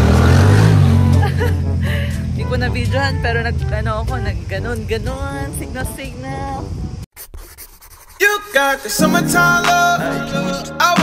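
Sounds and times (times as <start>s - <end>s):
background music: 0.0s - 7.0s, 8.2s - 11.0s
car engine and road noise: 0.0s - 7.1s.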